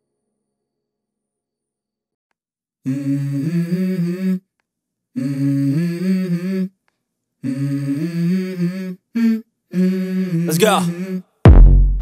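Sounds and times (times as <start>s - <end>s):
hummed vocal phrase: 2.8s - 4.5s, 5.2s - 6.8s, 7.4s - 11.3s.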